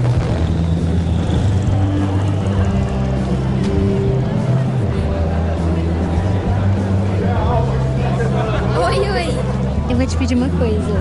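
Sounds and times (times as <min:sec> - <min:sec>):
low rumble with deep tones: 0:00.0 - 0:08.7.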